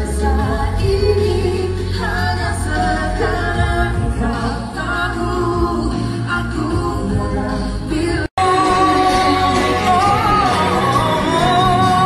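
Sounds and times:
man and woman singing duet: 0.0s - 12.0s
musical accompaniment: 0.0s - 12.0s.

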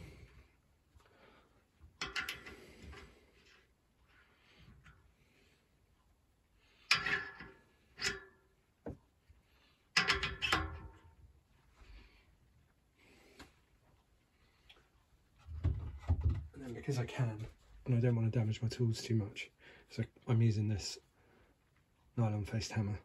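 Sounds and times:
metal clinks and knocks: 2.0s - 3.0s, 6.9s - 8.4s, 9.9s - 11.2s.

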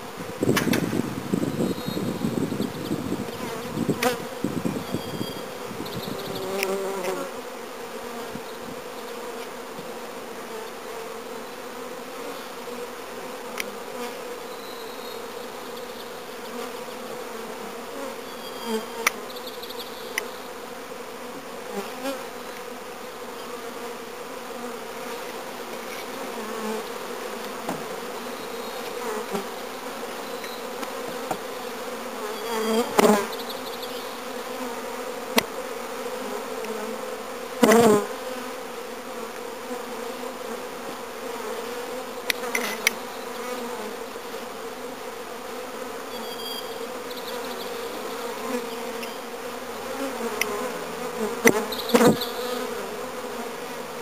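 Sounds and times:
honey bees humming: 0.0s - 54.0s.

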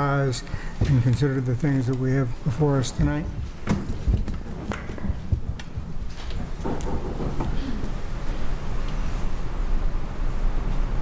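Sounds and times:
low rumbling room noise: 0.0s - 11.0s
faint murmur: 5.0s - 9.5s.

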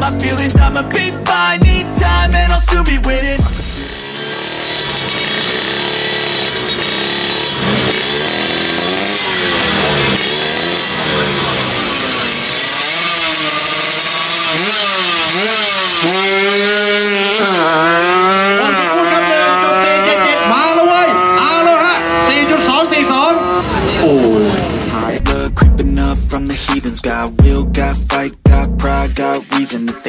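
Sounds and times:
motorcycle engine revving: 0.0s - 29.5s.

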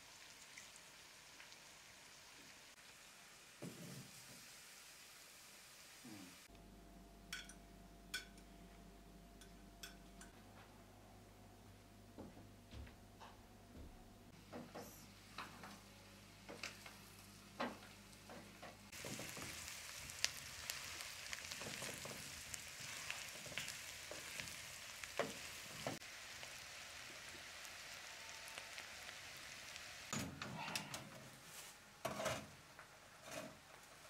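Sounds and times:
food sizzling in a frying pan: 0.0s - 6.5s, 14.5s - 30.2s.

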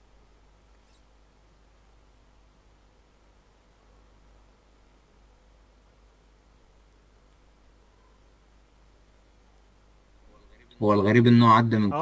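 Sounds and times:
faint room hiss and hum: 0.0s - 12.0s.

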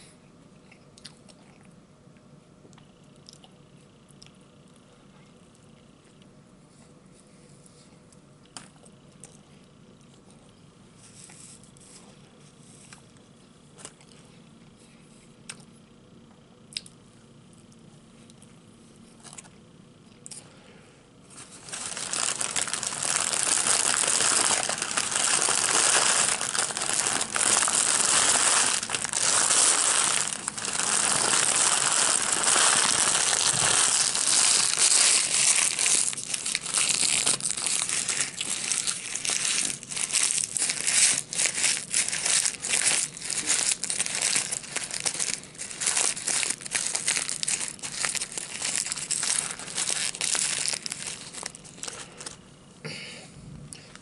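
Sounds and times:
paper wrapper crinkling: 21.3s - 52.4s.

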